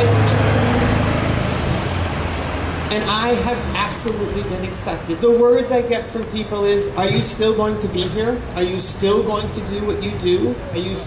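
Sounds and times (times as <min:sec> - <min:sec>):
vehicle engine running: 0:00.0 - 0:10.8
road noise: 0:00.0 - 0:11.0.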